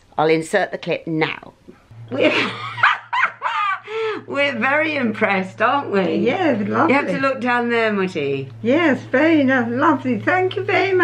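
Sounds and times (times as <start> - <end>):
dog barking and yelping: 2.8 - 3.5.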